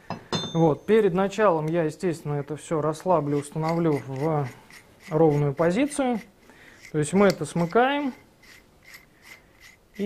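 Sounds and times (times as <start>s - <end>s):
light metal scraping: 2.8s - 10.0s.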